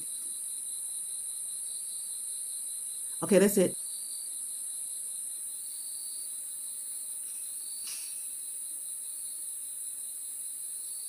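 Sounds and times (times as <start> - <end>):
high-pitched hiss: 0.0 - 11.0.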